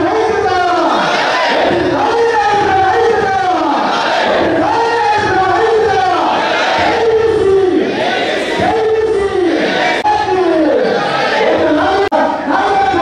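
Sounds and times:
crowd chanting in unison: 0.6s - 10.1s, 10.7s - 12.5s.

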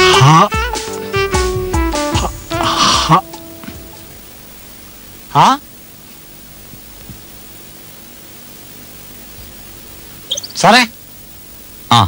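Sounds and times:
steady hiss: 0.2s - 12.0s.

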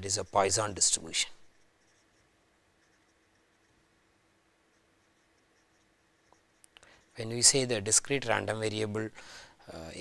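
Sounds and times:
marker pen scratching on paper: 0.0s - 4.0s, 4.6s - 8.2s.

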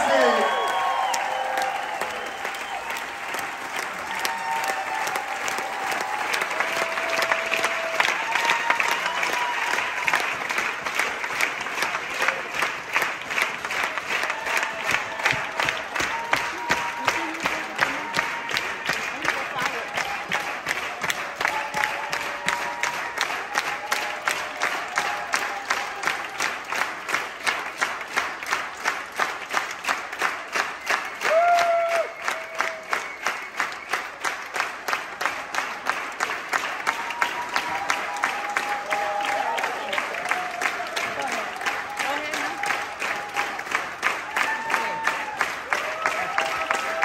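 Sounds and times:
audience clapping in unison: 0.0s - 47.0s.

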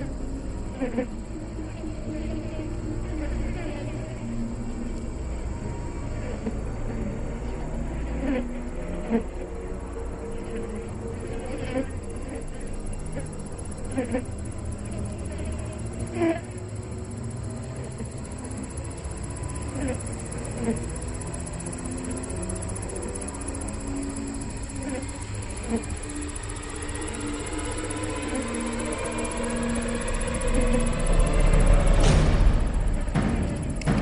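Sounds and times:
low steady drone: 0.0s - 34.0s.

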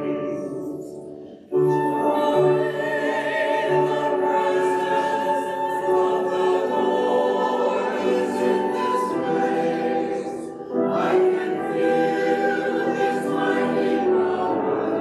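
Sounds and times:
church choir singing: 0.0s - 15.0s
flute: 0.0s - 15.0s
grand piano: 0.0s - 15.0s.

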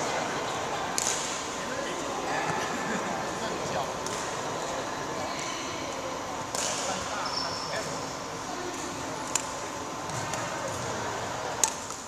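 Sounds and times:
murmur of voices: 0.0s - 12.0s
racket hitting shuttlecock: 0.9s - 1.4s, 6.5s - 7.0s
shoe squeaking on court floor: 7.0s - 8.0s.

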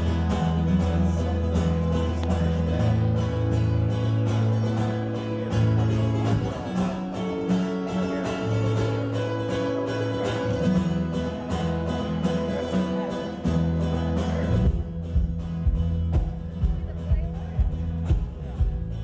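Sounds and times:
guitar strumming chords: 0.0s - 19.0s
low bass notes: 0.0s - 19.0s.

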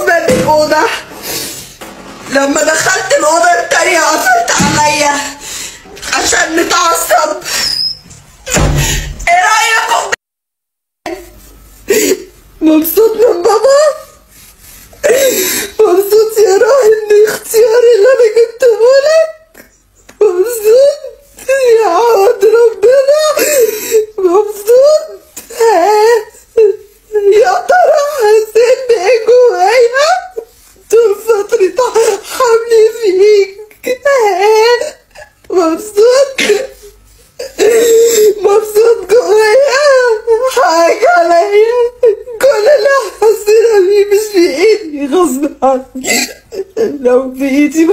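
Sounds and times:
woman talking in wavering voice: 0.0s - 1.1s, 2.3s - 8.0s, 9.2s - 10.2s, 12.6s - 14.2s, 15.8s - 19.6s, 20.2s - 36.8s, 37.6s - 47.9s
woman crying and wailing: 15.0s - 47.9s
woman whimpering: 33.8s - 47.9s.

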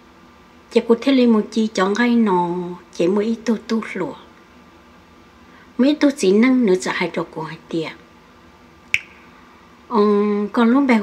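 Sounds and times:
background hiss: 0.0s - 11.0s
sharp click: 8.9s - 9.2s.

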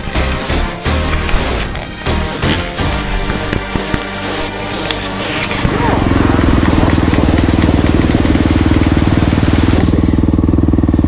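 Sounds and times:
dirt bike engine idling: 0.0s - 11.0s.

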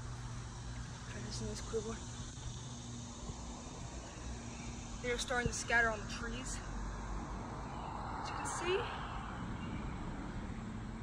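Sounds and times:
distant road traffic: 0.0s - 11.0s
faint steady hum: 0.0s - 11.0s.

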